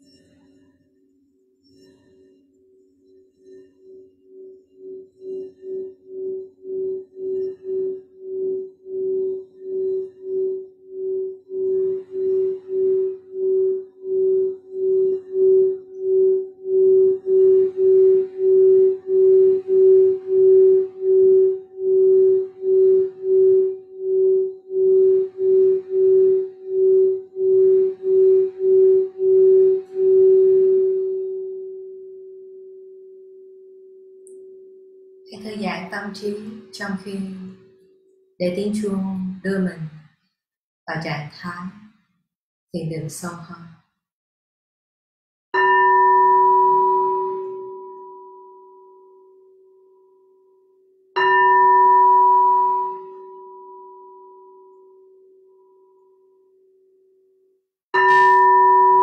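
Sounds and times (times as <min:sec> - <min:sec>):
singing bowl humming: 0:00.0 - 0:39.3, 0:45.6 - 0:59.0.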